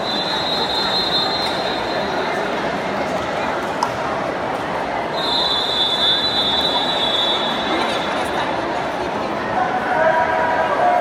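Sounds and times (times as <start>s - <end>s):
crowd murmur: 0.0s - 11.0s
long high-pitched whistle blast: 5.2s - 7.7s.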